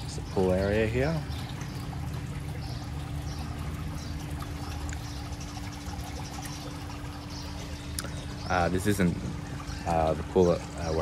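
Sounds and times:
pool water trickling: 0.0 - 11.0.

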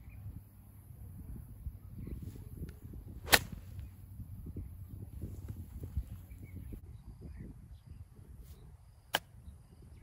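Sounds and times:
golf club swinging through grass: 2.1 - 4.2, 4.9 - 6.6
golf ball struck crack: 3.2 - 3.9.

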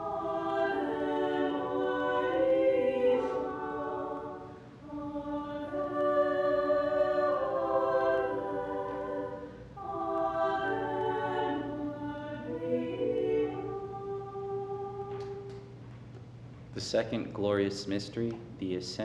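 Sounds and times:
choir singing a hymn: 0.0 - 15.6.

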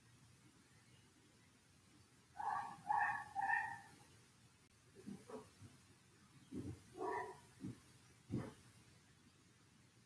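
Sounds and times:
animal whining: 2.4 - 3.9.

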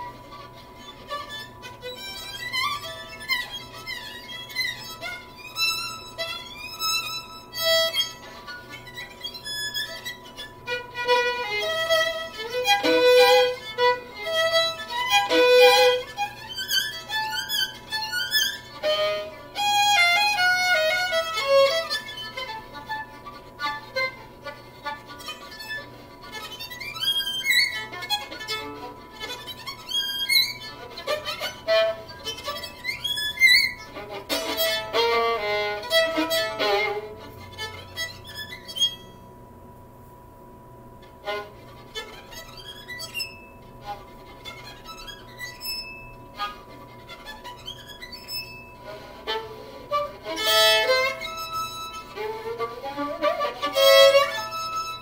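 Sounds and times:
solo violin melody: 0.0 - 39.2, 41.0 - 55.0.

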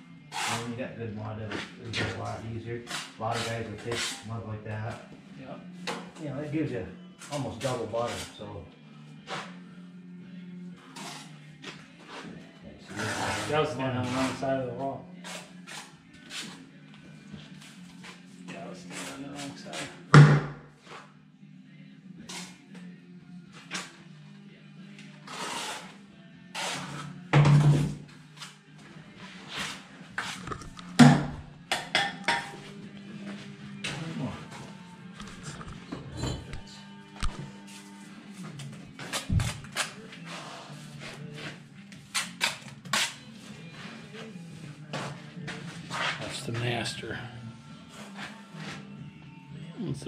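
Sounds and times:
background music: 0.0 - 50.0
trowel scraping mortar: 12.9 - 14.4, 25.3 - 25.9, 29.5 - 31.4.

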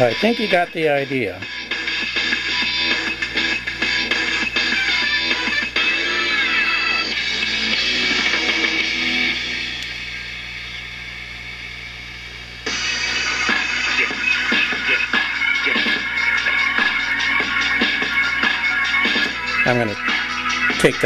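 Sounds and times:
music from radio loudspeaker: 0.0 - 10.8, 12.6 - 21.0.

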